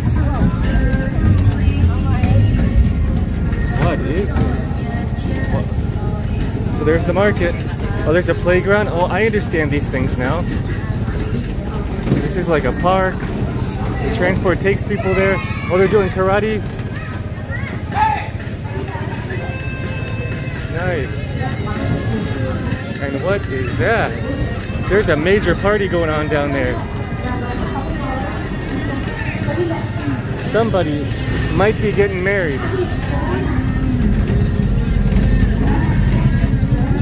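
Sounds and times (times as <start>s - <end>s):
faint voices: 0.0s - 37.0s
music: 0.0s - 37.0s
trolley train rumbling: 0.0s - 37.0s.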